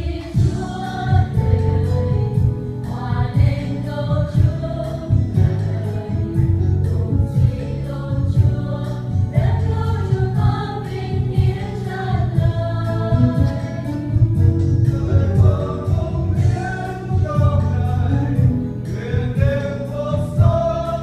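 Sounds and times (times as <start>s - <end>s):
accompaniment with steady beat: 0.0s - 21.0s
mixed choir singing in harmony: 0.0s - 21.0s.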